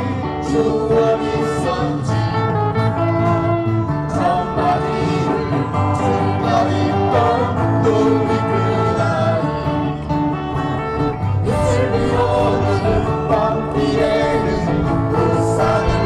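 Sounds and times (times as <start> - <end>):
bass guitar: 0.0 - 16.0
strummed acoustic guitars: 0.0 - 16.0
voices singing: 0.0 - 16.0.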